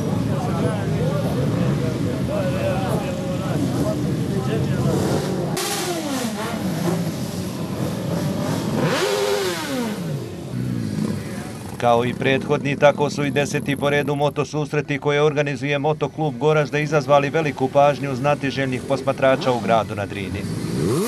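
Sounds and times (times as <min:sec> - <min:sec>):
motorcycle engine revving: 0:00.0 - 0:14.1, 0:18.6 - 0:21.0
crowd voices: 0:00.0 - 0:20.6
motorcycle engines running: 0:00.0 - 0:21.0.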